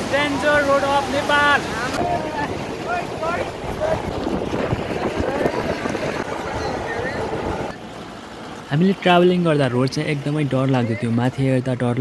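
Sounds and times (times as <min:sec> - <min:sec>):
pickup truck driving: 0:00.0 - 0:11.0
wind buffeting microphone: 0:02.0 - 0:07.7.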